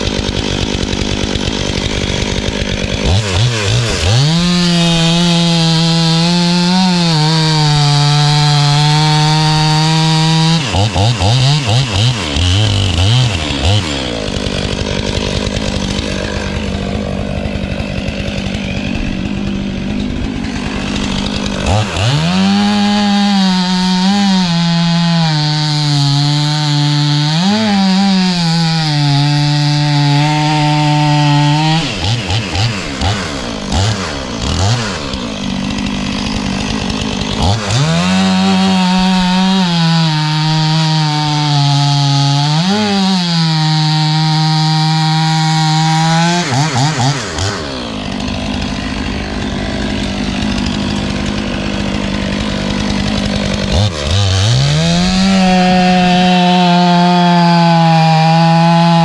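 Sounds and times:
chainsaw cutting log: 0.0 - 59.0.

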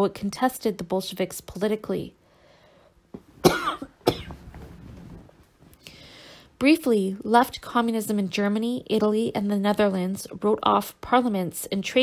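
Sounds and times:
woman coughing: 3.4 - 4.4.

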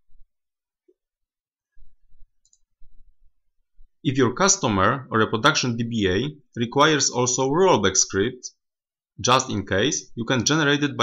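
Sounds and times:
computer mouse click: 2.4 - 2.7.

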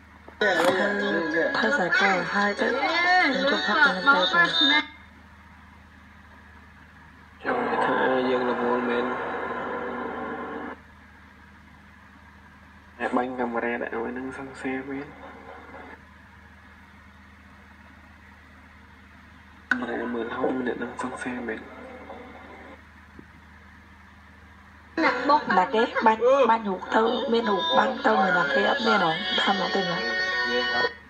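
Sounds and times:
low steady hum: 0.0 - 31.0
recorded voice message: 7.4 - 9.6, 19.7 - 22.2.

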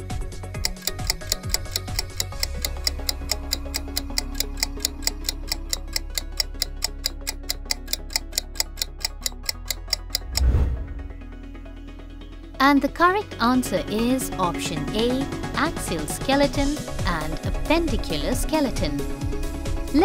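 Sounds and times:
rapid clock ticking: 0.0 - 10.6
background music bed: 0.0 - 20.0
loud swell: 10.3 - 11.4.

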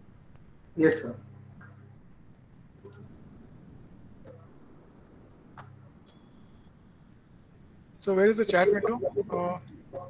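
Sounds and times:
low hum: 0.0 - 10.0
faint clicks: 0.3 - 7.6.

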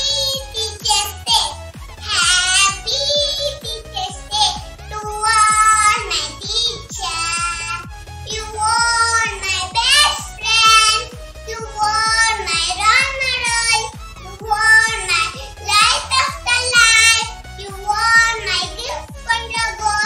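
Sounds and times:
backing track with steady beat: 0.0 - 20.0
young girl singing: 0.0 - 20.0.

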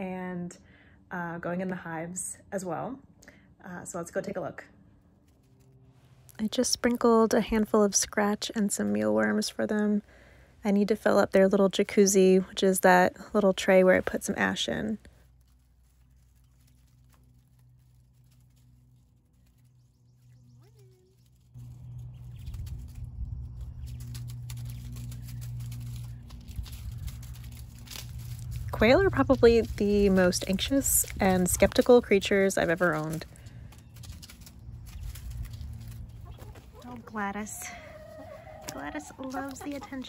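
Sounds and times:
low steady hum: 0.0 - 40.0
quail pecking in dry leaves: 5.1 - 40.0
low rumble: 14.0 - 40.0.

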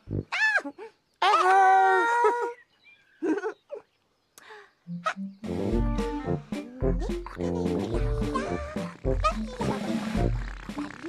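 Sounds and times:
squeaky wordless character voices: 6.5 - 11.0.

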